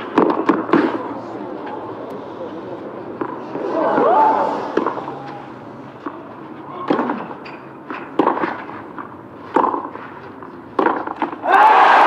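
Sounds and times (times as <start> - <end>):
tennis ball struck by rackets: 0.0 - 1.0, 4.7 - 5.1, 6.8 - 11.5.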